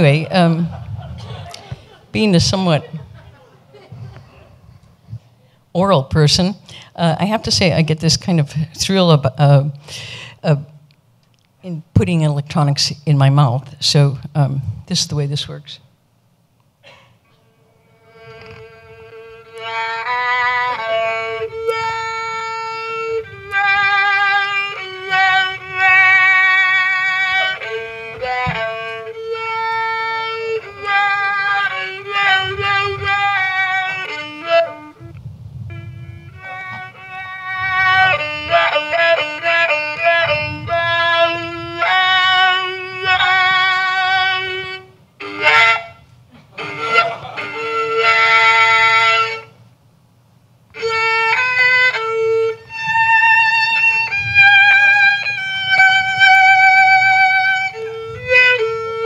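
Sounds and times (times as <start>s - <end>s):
violin melody shaped by mouth: 17.3s - 49.6s, 50.7s - 59.0s.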